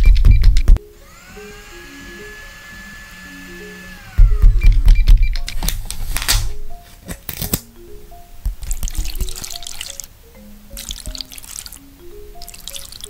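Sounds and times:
electric blender motor whining: 1.0 - 4.6.

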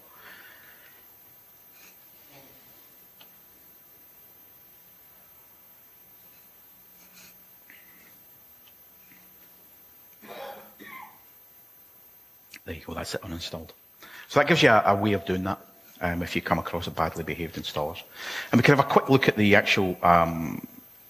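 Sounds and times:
faint steady hum: 0.0 - 21.0
soft clicks: 3.2 - 3.4.

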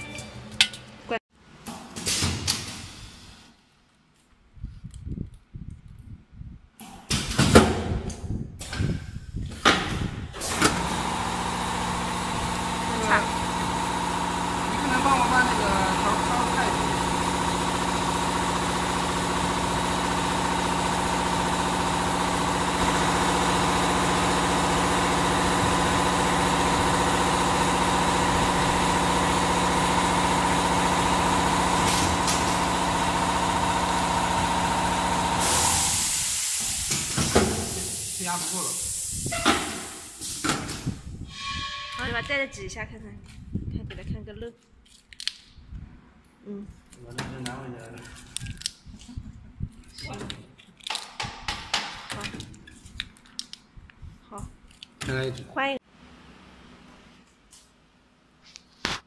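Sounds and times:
machine humming: 10.7 - 35.6
air hiss: 35.4 - 40.9.

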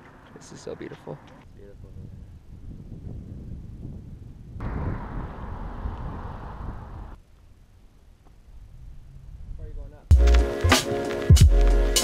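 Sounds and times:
wind buffeting microphone: 1.4 - 7.2.

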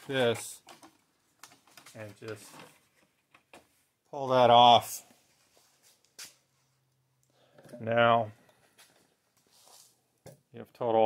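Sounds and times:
man talking: 0.0 - 0.6, 1.9 - 2.6, 4.1 - 5.1, 7.7 - 8.4, 10.6 - 11.0.

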